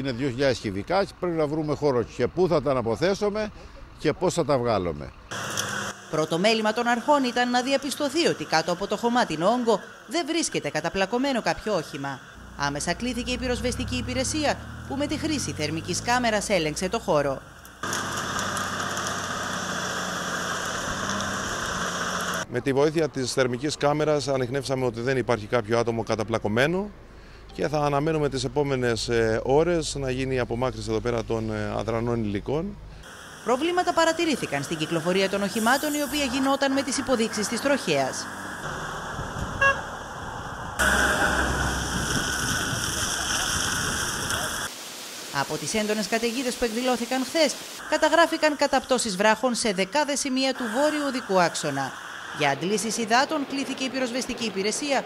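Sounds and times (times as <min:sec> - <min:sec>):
diesel engine idling: 0:00.0 - 0:22.5, 0:40.8 - 0:43.6
outdoor hiss: 0:05.3 - 0:22.5, 0:33.0 - 0:39.0, 0:40.8 - 0:54.4.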